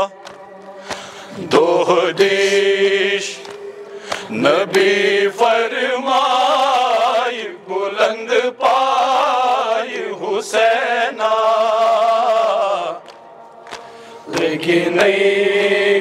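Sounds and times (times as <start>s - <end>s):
group of men chanting: 1.0s - 13.1s, 14.1s - 16.0s.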